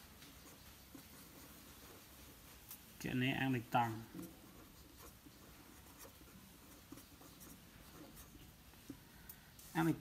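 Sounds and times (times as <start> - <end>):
marker scratching on paper: 0.0 - 3.0, 3.6 - 9.1.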